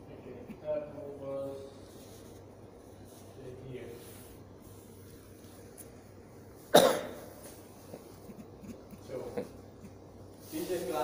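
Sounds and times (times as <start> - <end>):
loud cough: 6.7 - 7.3.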